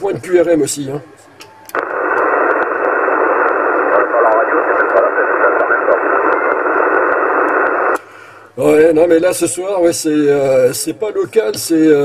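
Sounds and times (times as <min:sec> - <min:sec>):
radio static hiss: 0:01.7 - 0:08.0
faint radio voice: 0:03.6 - 0:07.4.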